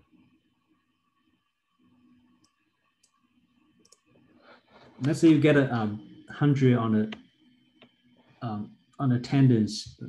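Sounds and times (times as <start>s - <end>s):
faint computer mouse clicks: 3.8s - 4.1s.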